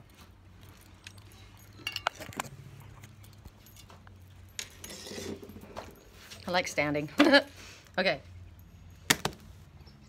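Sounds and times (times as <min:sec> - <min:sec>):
charm bracelets clinking: 0:00.4 - 0:07.1.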